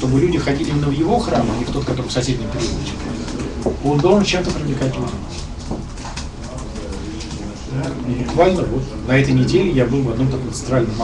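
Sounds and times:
man speaking: 0.0s - 5.4s, 6.4s - 11.0s
room murmur: 0.0s - 11.0s.

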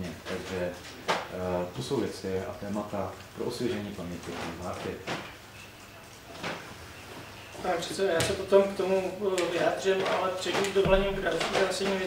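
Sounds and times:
man speaking: 7.6s - 12.0s.

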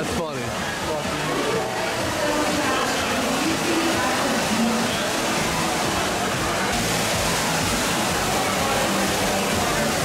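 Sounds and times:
indoor fountain water falling: 0.0s - 10.0s
murmur of crowd: 0.0s - 10.0s.

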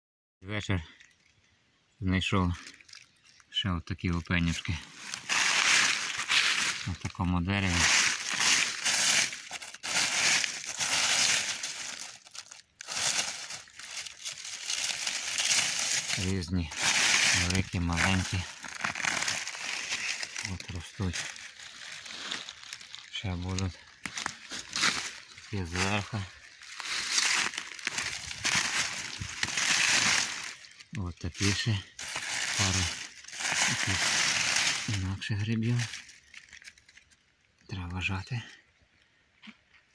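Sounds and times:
dry leaves crunching: 4.1s - 37.2s.

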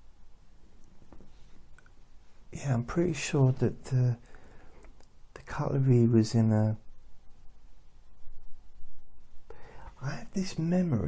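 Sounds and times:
steady low hum: 0.0s - 11.0s
man talking softly: 2.5s - 4.2s, 5.4s - 6.9s, 9.9s - 11.0s
faint clicks: 4.3s - 5.2s.

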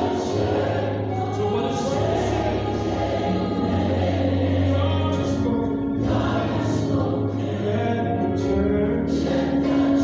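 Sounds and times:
choir singing: 0.0s - 10.0s
instrumental accompaniment with bass: 0.0s - 10.0s.

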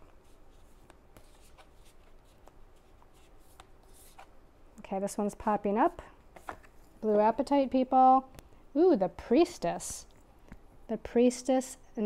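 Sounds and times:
cards shuffled by hand: 0.0s - 4.3s.

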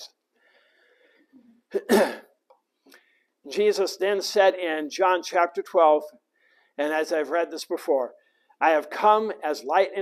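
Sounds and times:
faint breathing: 0.3s - 1.6s, 2.8s - 3.4s, 6.3s - 6.8s, 8.2s - 8.6s
man clearing throat: 1.7s - 2.4s.

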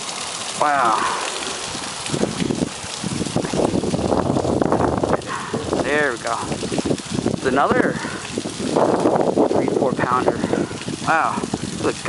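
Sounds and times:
person speaking: 0.6s - 1.8s.

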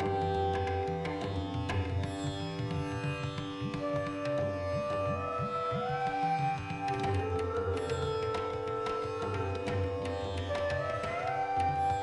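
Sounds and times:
tabla drum strokes: 0.0s - 12.0s.

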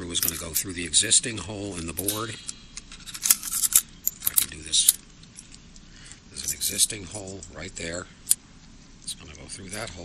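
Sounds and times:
sharp clicks of small parts: 1.8s - 6.6s.

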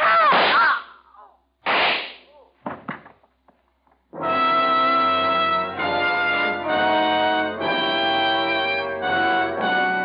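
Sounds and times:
pistol gunshot: 1.7s - 2.2s.

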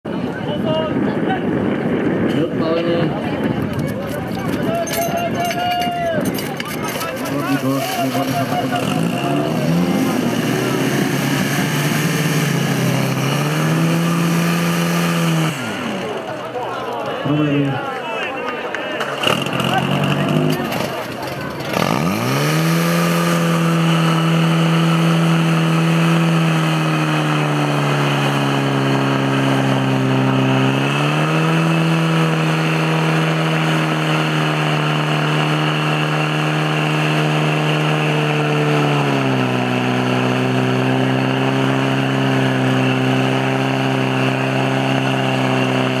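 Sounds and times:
pump engine running at high revs: 2.8s - 16.6s, 19.1s - 46.0s.

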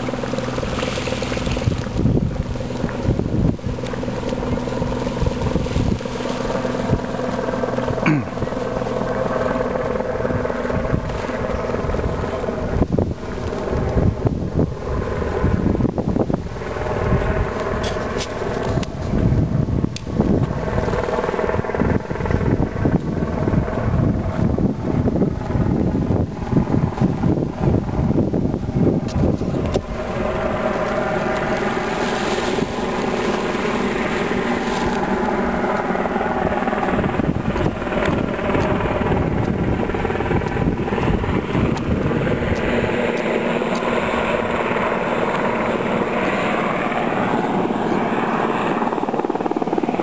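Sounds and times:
constant rushing noise: 0.0s - 50.0s
engine drone: 0.0s - 50.0s
helicopter flying by: 0.0s - 50.0s.

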